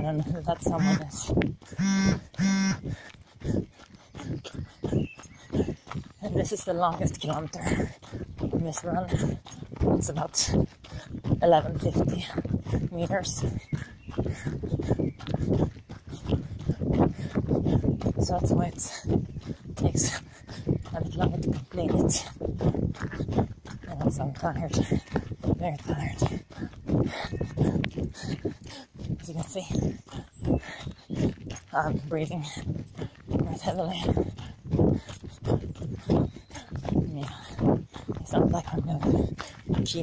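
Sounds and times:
heavy panting breaths: 0:00.0 - 0:40.0.

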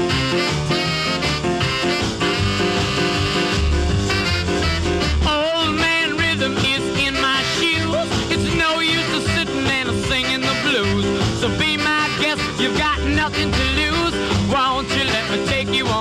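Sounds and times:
upbeat rock and roll music: 0:00.0 - 0:16.0.

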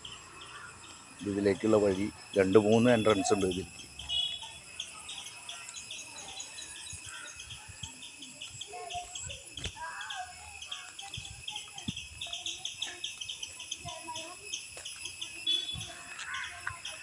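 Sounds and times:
bird calls: 0:00.0 - 0:17.0
insects chirping: 0:00.0 - 0:17.0.

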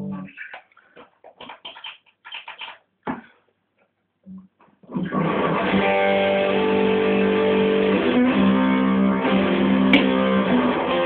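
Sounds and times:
electric guitar muted strums: 0:04.9 - 0:11.0.

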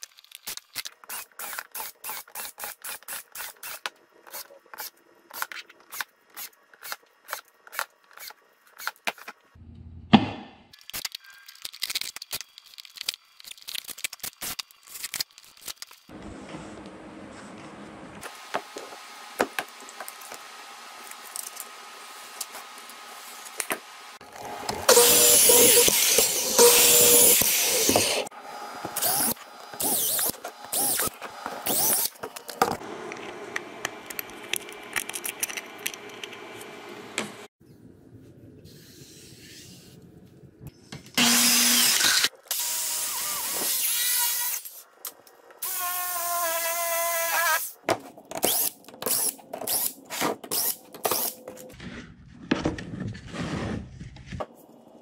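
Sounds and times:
power tool running: 0:24.2 - 0:37.5, 0:41.2 - 0:44.7
cordless drill whine: 0:24.9 - 0:28.3, 0:41.2 - 0:43.9.

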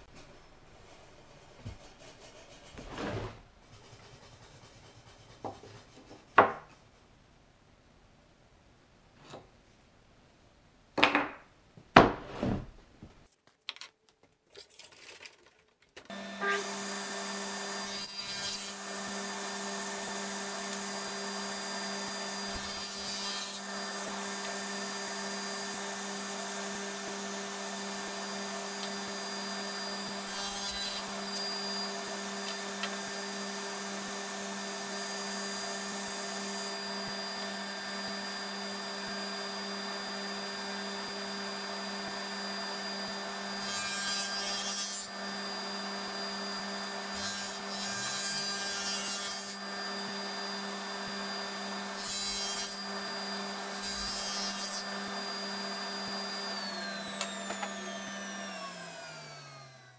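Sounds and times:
saw cutting wood: 0:16.1 - 0:59.9
table saw running: 0:16.1 - 0:59.9
saw motor winding down: 0:55.0 - 0:59.9.

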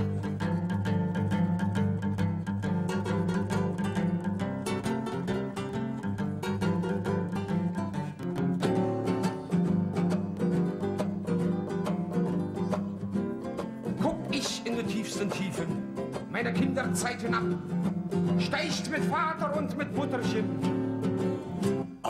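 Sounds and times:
acoustic guitars playing blues: 0:00.0 - 0:22.0.

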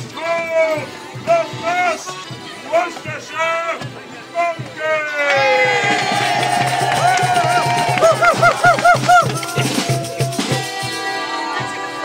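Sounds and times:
folk dance band playing: 0:00.0 - 0:12.0.

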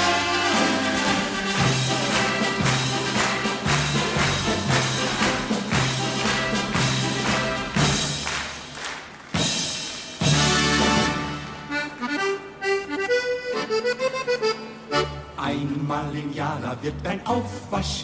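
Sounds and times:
double bass: 0:00.0 - 0:08.1
accordion: 0:00.0 - 0:08.4, 0:10.2 - 0:16.4.

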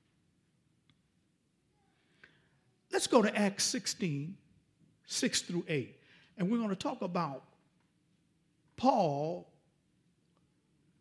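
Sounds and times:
faint breath: 0:01.8 - 0:02.8, 0:06.0 - 0:06.4
man speaking: 0:02.9 - 0:04.4, 0:05.1 - 0:07.6, 0:08.8 - 0:09.5.

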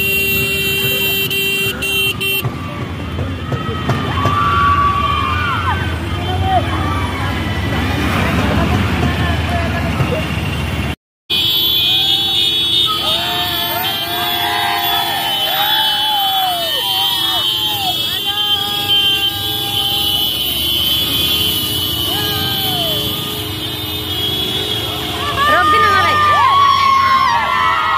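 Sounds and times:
road traffic: 0:00.0 - 0:27.9
scooter and motorbike engines: 0:00.0 - 0:27.9
people shouting: 0:01.8 - 0:07.8, 0:12.2 - 0:20.4, 0:22.0 - 0:23.4, 0:25.0 - 0:27.9.

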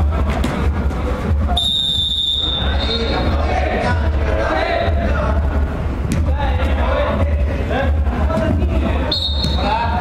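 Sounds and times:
high whistle-like tone: 0:01.5 - 0:03.3, 0:09.1 - 0:09.7
steady low rumble: 0:03.2 - 0:09.1.

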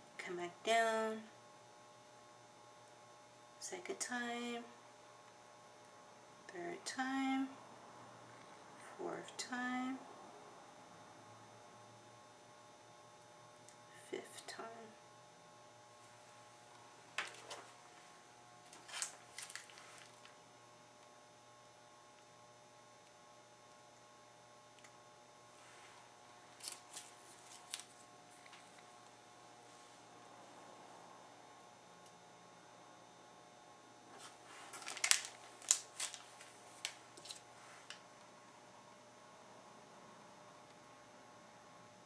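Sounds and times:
faint room hum: 0:00.0 - 0:42.0
soft rustling clicks of icing bag: 0:18.6 - 0:20.4, 0:25.7 - 0:28.9, 0:34.1 - 0:38.1.

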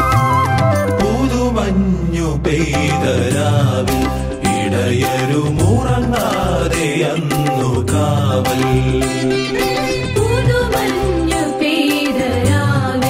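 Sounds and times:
band with bass and percussion: 0:00.0 - 0:13.0
person singing: 0:00.0 - 0:13.0.

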